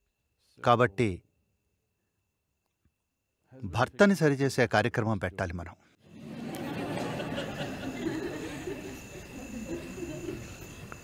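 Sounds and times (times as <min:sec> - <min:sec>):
crickets chirping: 0:00.0 - 0:04.8, 0:06.0 - 0:11.0
pulsing high tone: 0:06.3 - 0:11.0.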